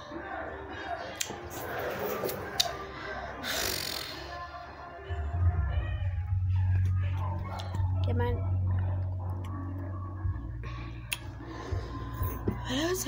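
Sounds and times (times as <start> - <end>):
indistinct background voices: 0.0 - 13.0
music: 0.0 - 13.0.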